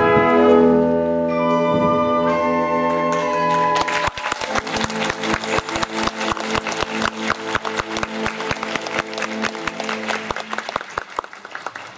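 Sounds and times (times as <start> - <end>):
wind band holding notes: 0.0 - 11.9
audience applauding: 2.9 - 11.9.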